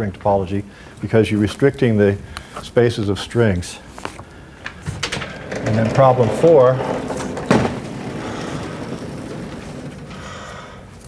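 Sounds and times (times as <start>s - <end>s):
chalkboard panels rolling and scraping: 4.1s - 10.6s.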